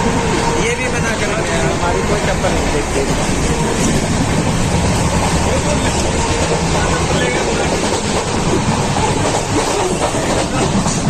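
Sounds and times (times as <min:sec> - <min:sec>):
passenger train running: 0:00.0 - 0:11.0.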